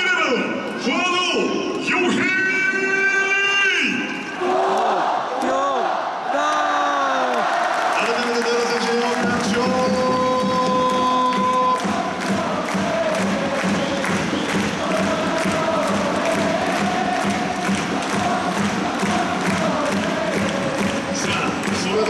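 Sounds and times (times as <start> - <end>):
crowd chanting: 4.3 - 8.0, 9.7 - 22.0
clapping: 7.3 - 22.0
drum beat: 9.2 - 22.0.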